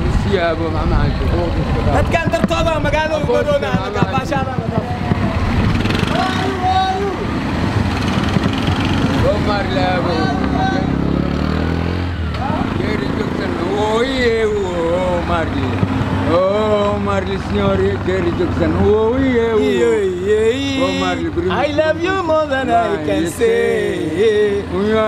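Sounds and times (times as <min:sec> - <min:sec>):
men talking: 0:00.0 - 0:08.1, 0:08.8 - 0:11.3, 0:12.2 - 0:25.0
vehicle engine running: 0:00.0 - 0:25.0.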